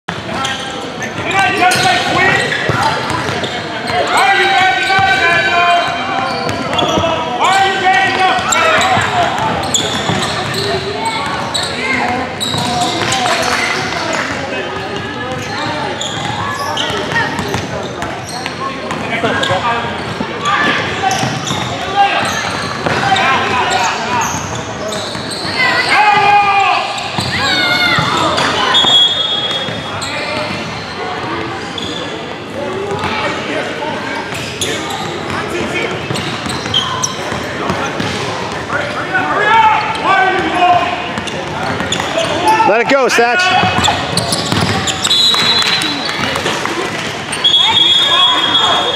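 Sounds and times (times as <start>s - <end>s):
voices talking and calling out: 0.2s - 48.9s.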